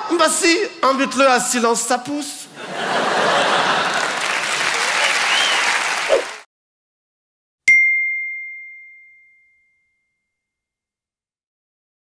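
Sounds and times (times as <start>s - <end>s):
audience applauding: 2.7s - 6.5s.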